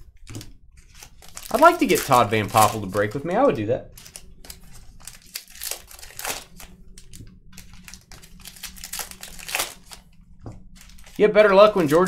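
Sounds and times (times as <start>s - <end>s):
wrapper tearing and crinkling: 0.3s - 3.3s, 3.9s - 12.0s.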